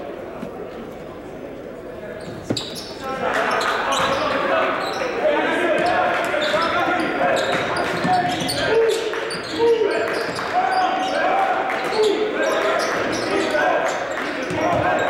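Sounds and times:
players and spectators voices: 0.0 - 15.0.

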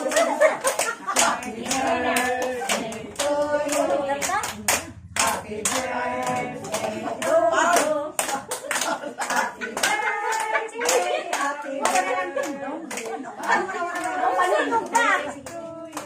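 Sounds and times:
group singing: 0.0 - 16.0
people clapping in rhythm: 0.0 - 16.0.

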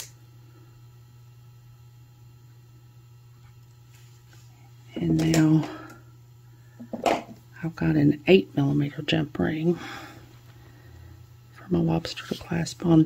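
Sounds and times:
faint steady hum: 0.0 - 13.0
person's voice: 4.9 - 5.9, 7.6 - 9.9, 11.6 - 13.0.

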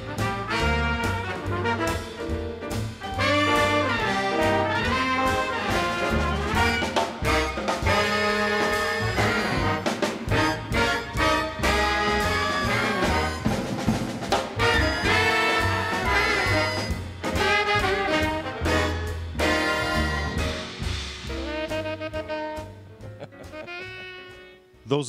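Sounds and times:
big band jazz over loudspeakers: 0.0 - 25.0.

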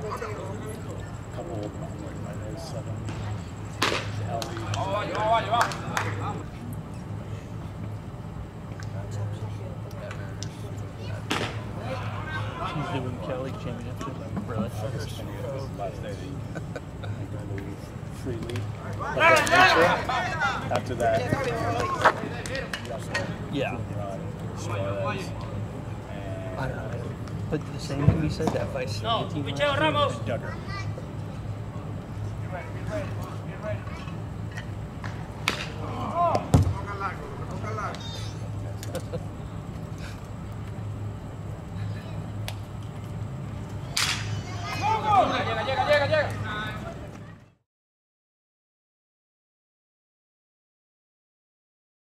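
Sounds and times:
quiet conversation: 0.0 - 47.6
steady low hum: 0.0 - 47.6
wooden bat hitting baseball: 3.8 - 4.8, 11.3 - 11.6, 35.0 - 36.8
voices shouting: 11.2 - 13.2, 18.8 - 22.8, 35.6 - 38.6, 43.9 - 47.1.

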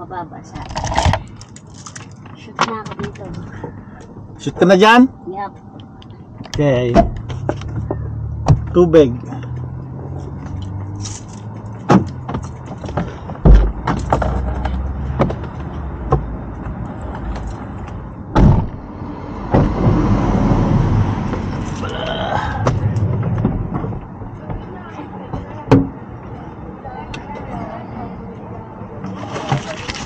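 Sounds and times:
knocks and clunks of objects: 5.8 - 8.8, 10.2 - 18.8, 19.4 - 20.0, 22.5 - 26.0.

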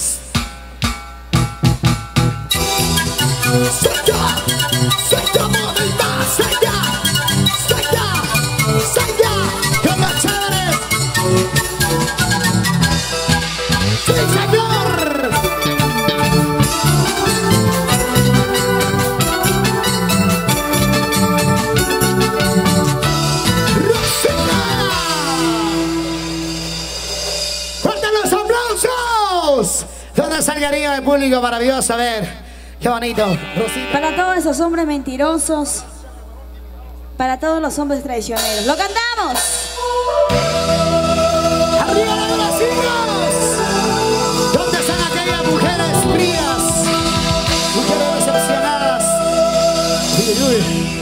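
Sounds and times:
band with harp bass and keyboard: 0.0 - 32.0, 38.3 - 51.0
person crying out: 23.6 - 26.1.

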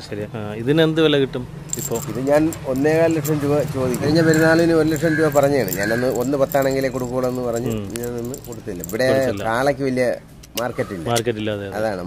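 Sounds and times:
person talking: 1.8 - 11.4.

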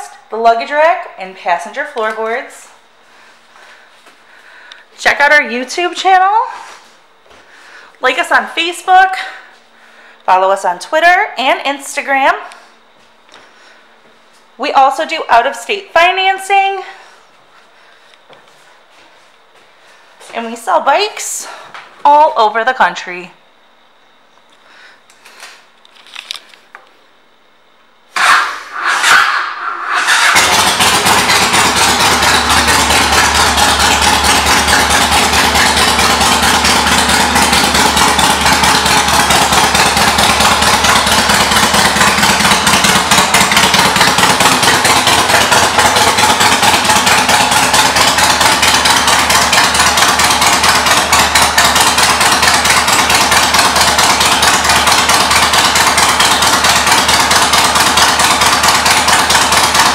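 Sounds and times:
motorcycle engine starting and idling: 28.1 - 59.9.

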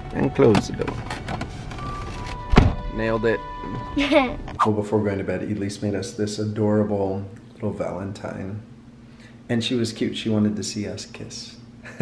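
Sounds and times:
van door slamming: 2.4 - 2.9.

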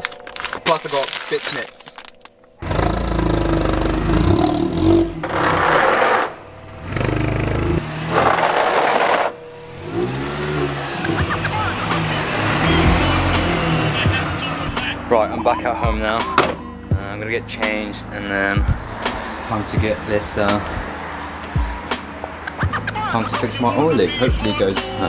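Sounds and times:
car engine revving: 2.6 - 16.4, 17.3 - 24.2.

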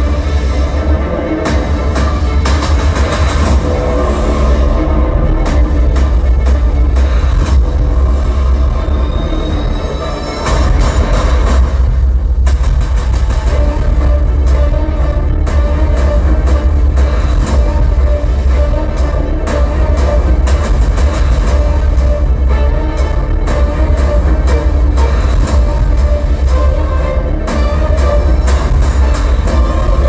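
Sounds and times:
cinematic trailer music with heavy bass: 0.0 - 30.0.

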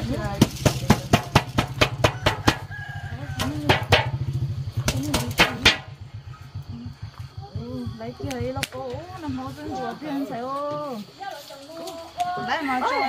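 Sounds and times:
sharp knocks: 0.3 - 2.7, 3.4 - 4.2, 4.8 - 6.0
rooster crowing: 1.9 - 4.2, 12.4 - 13.0.

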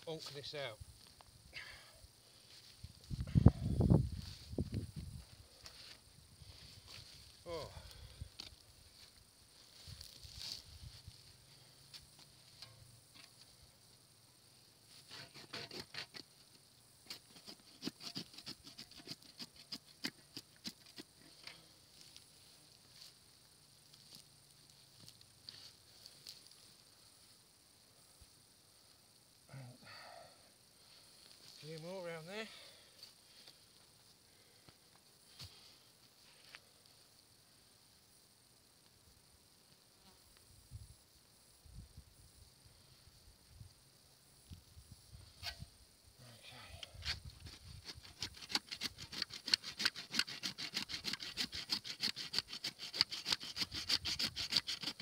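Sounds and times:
saw rasping through roots: 15.0 - 16.2, 17.0 - 21.6, 47.0 - 55.0
sharp cracks of roots: 47.0 - 55.0.

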